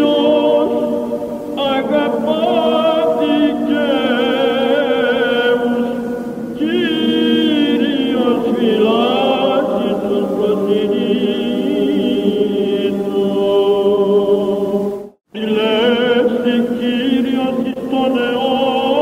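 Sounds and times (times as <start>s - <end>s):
man chanting ornamented melody: 0.0s - 19.0s.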